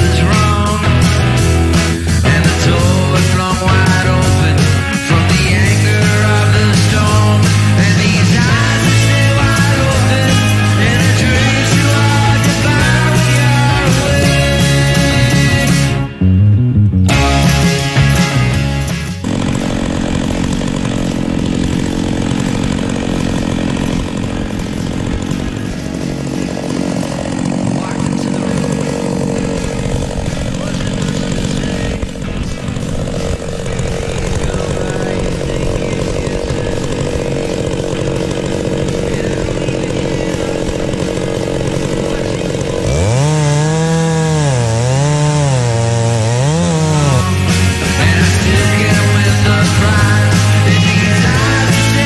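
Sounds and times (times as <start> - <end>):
chainsaw cutting a log: 0.0 - 16.2, 17.1 - 52.0.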